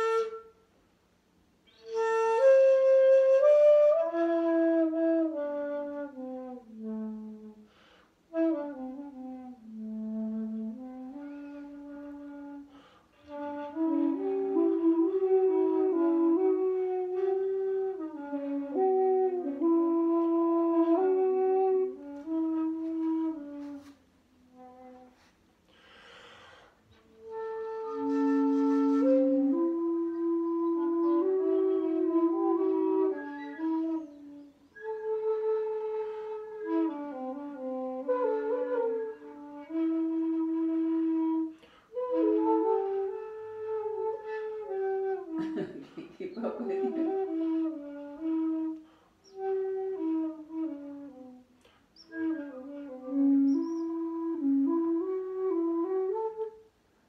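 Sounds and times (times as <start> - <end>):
bamboo flutes playing: 0.0 - 0.8, 1.6 - 25.8, 26.8 - 45.4, 46.5 - 57.0
breathy rush of air: 25.6 - 27.0.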